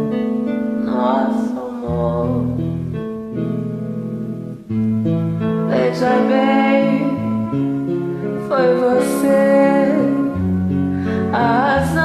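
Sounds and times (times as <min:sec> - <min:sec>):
slow romantic instrumental music: 0:00.0 - 0:12.0.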